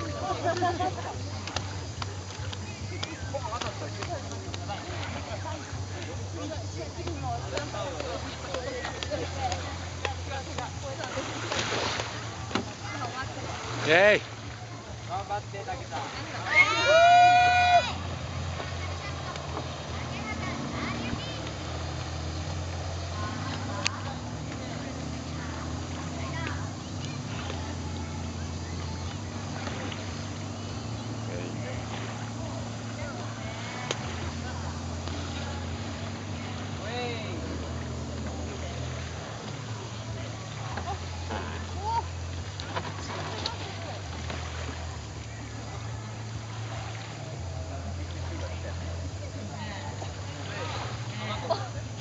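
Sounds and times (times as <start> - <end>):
boat engine idling: 0.0 - 52.0
murmur of indistinct voices: 0.0 - 52.0.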